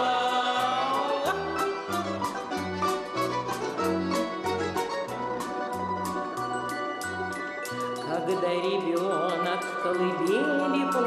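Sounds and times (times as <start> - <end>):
choir singing folk song: 0.0 - 1.8.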